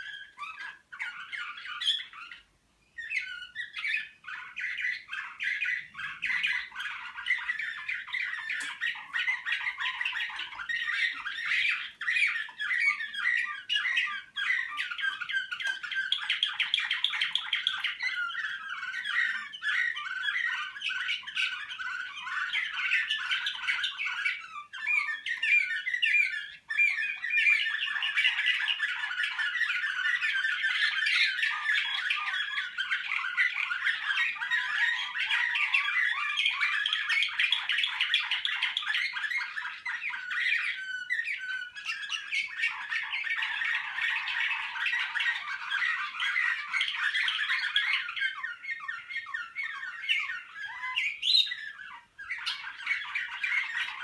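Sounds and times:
canaries singing trills: 0.0 - 54.0.

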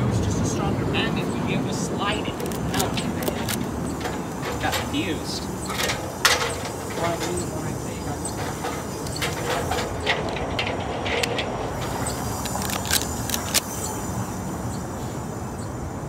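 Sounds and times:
traffic noise: 0.0 - 16.0.

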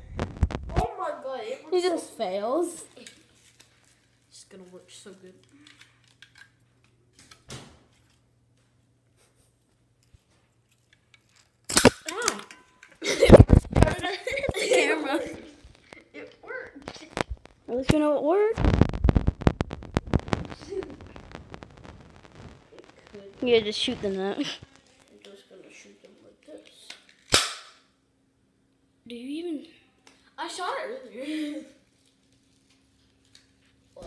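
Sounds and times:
slingshot smack: 11.7 - 12.0, 27.3 - 27.8
toy gun bang: 11.7 - 12.4, 27.3 - 27.8.

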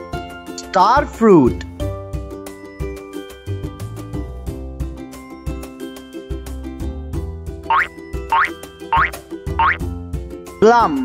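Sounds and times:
upbeat children's music: 0.0 - 11.0.

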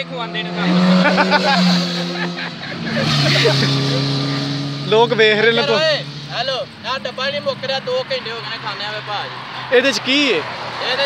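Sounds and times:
vehicle engine hum passing: 0.0 - 11.0.

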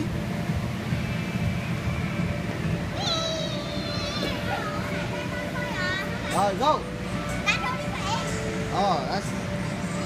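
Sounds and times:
background music: 0.0 - 10.0
steady low hum: 0.0 - 10.0
children's voices: 3.0 - 6.3.

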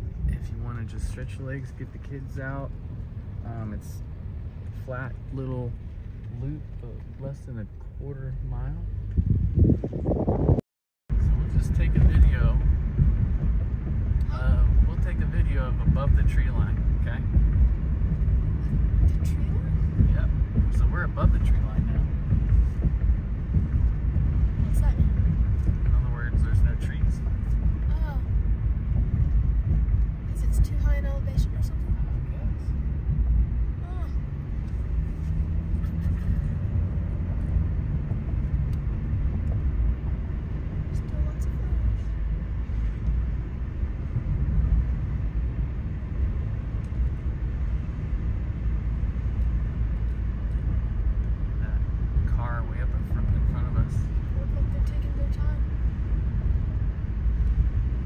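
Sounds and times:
car driving on paved road: 0.0 - 58.0.

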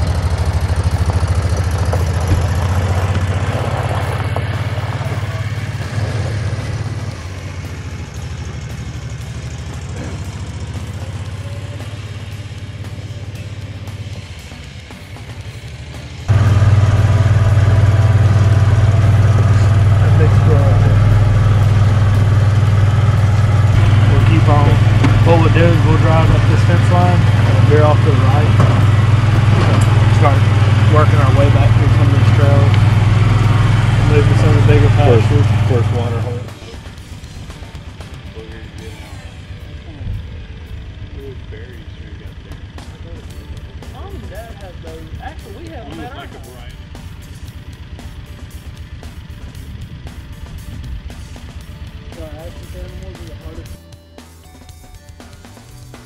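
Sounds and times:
utility vehicle engine droning: 0.0 - 56.0.

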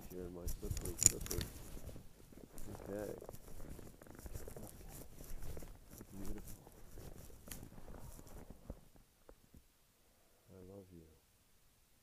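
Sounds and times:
footsteps crunching on snow: 0.4 - 9.0.

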